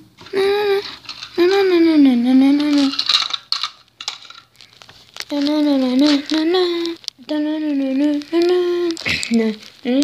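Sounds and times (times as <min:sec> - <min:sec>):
small hard objects clinking: 0:00.3 - 0:01.8, 0:02.4 - 0:10.0.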